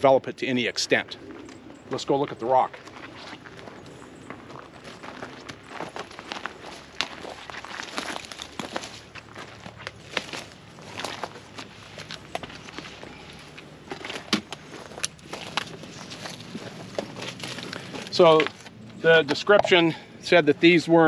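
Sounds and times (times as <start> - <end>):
footsteps on stony dirt trail: 2.8 - 20.0.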